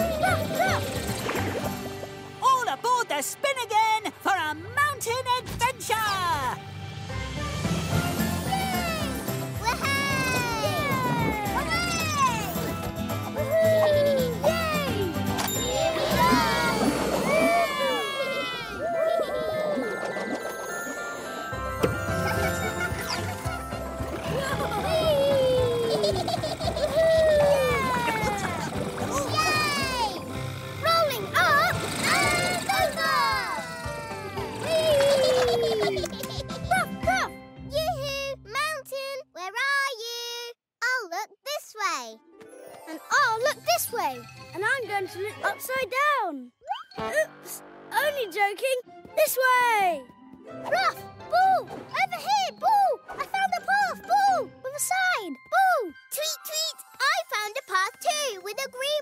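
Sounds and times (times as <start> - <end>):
cartoon puppy yipping: 0.0 - 1.1, 13.4 - 15.1.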